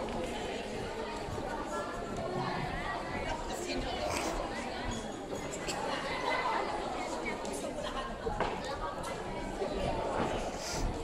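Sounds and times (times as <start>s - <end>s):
indistinct chatter of many voices: 0.0s - 11.0s.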